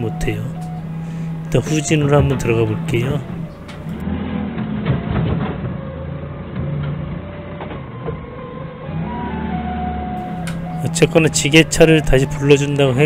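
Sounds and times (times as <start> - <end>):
forklift engine running: 0.0 - 13.0.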